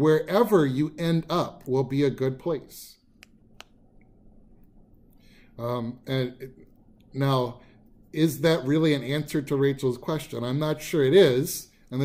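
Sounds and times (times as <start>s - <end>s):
faint steady hum: 0.0s - 12.0s
small sharp clicks: 3.2s - 5.2s.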